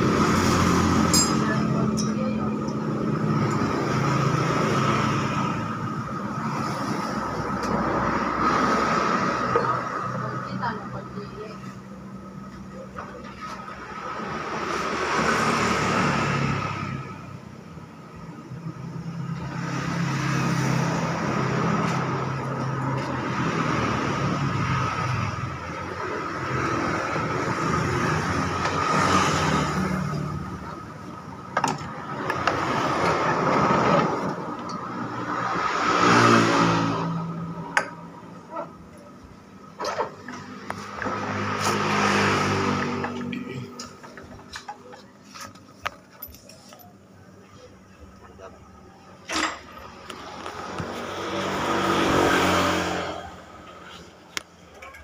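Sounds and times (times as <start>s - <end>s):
motor vehicles passing: 0.0s - 55.0s.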